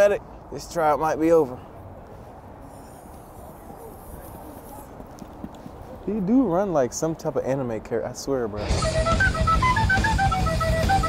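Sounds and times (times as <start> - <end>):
faint distant voices: 0.0 - 8.6.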